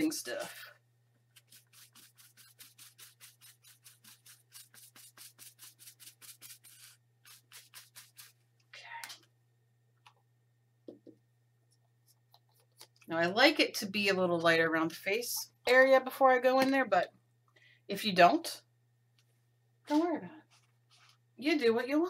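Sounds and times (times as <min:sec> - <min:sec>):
paintbrush brushing paint: 0:01.3 - 0:08.4, 0:20.5 - 0:21.2.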